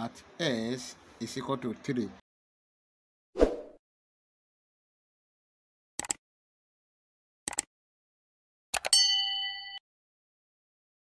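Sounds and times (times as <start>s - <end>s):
bright bell chime: 9.0s - 9.8s.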